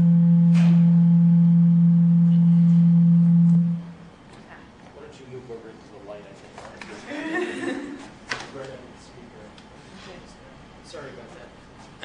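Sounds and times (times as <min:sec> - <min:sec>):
low electronic hum: 0:00.0 - 0:04.8.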